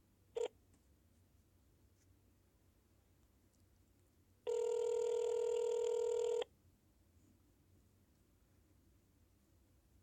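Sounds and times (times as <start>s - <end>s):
telephone ringback tone: 4.5s - 6.5s.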